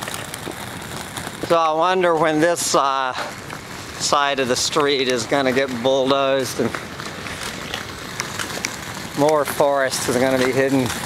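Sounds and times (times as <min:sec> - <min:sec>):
steady outdoor hiss: 0:00.0 - 0:11.0
footsteps walking: 0:06.6 - 0:09.6.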